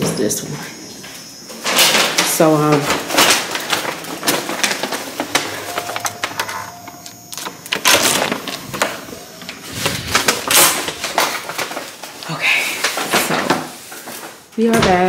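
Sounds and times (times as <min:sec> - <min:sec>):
electronic lock beep: 0:05.6 - 0:09.5.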